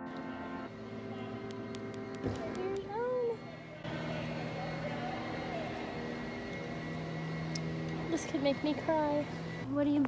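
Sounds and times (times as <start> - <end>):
faint voices: 0.2 - 7.3.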